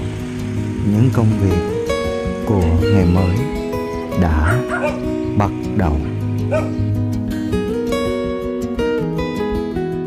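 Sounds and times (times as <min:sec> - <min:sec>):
strummed acoustic guitar music: 0:00.0 - 0:10.0.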